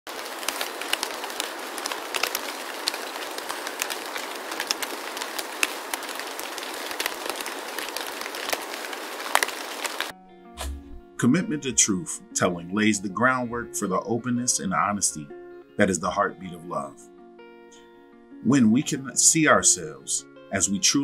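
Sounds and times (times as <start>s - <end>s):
crackling hiss with pops: 0.1s - 10.1s.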